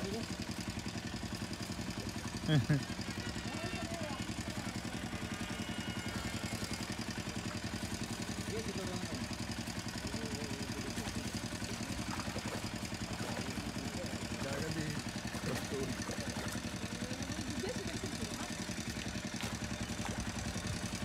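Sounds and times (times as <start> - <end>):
small engine running: 0.0 - 21.0.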